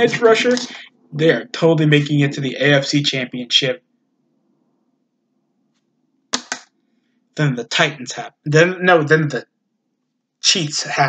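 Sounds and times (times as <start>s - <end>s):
faint room hum: 0.0s - 3.8s.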